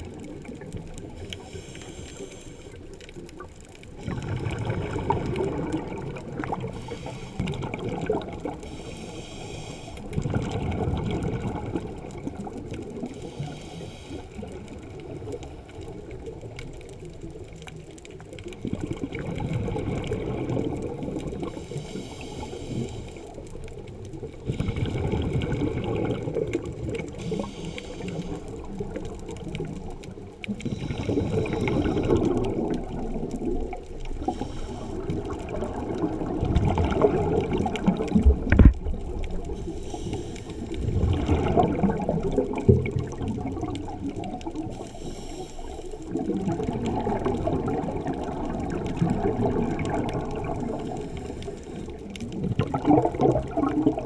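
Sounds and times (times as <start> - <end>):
bubbling on exhale: 0.0 - 17.5, 18.1 - 54.0
regulator hiss on inhale: 1.0 - 3.2, 6.5 - 7.8, 8.5 - 10.3, 13.0 - 15.8, 21.4 - 23.6, 27.0 - 29.0, 30.4 - 32.6, 34.1 - 35.5, 39.5 - 41.0, 44.7 - 46.2, 50.7 - 52.2.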